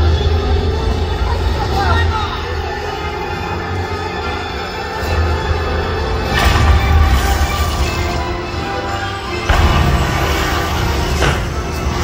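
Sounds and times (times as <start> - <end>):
loud dramatic show music: 0.0 - 12.0.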